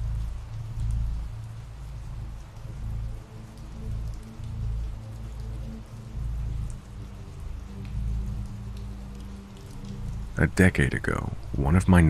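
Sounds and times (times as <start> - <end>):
rain drop ticks: 0.0 - 12.0
steady rainfall: 0.0 - 12.0.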